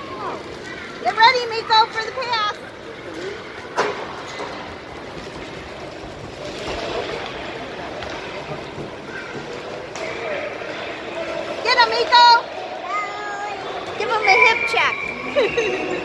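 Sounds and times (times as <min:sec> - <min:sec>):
distant voices: 0:00.0 - 0:16.0.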